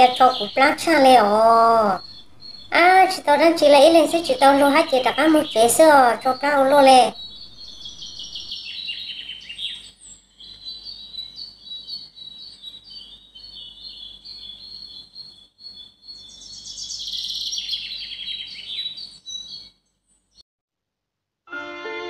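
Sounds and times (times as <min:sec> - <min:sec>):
birds chirping: 0:00.0 - 0:20.4.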